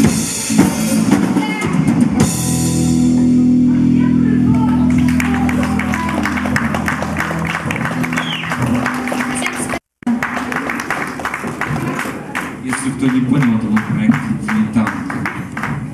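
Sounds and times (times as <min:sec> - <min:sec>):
rock band chord ringing: 0:02.2 - 0:09.7
audience applause: 0:04.6 - 0:15.9.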